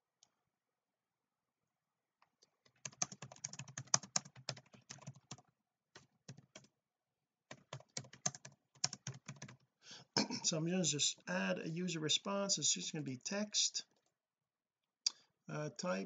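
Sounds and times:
computer keyboard typing: 2.7s - 6.7s, 7.5s - 9.6s.

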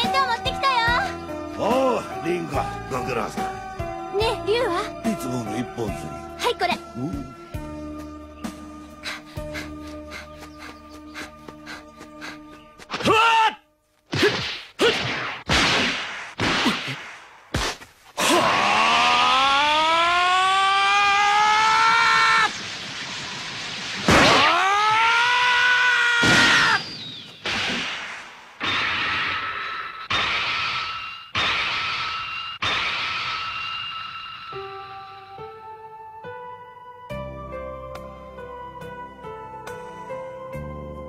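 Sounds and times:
whooshing punch strikes: 14.1s - 17.9s.

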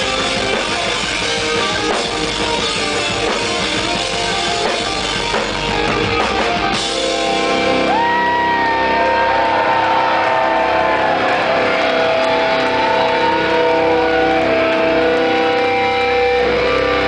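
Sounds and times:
distorted electric guitars: 0.0s - 17.0s.

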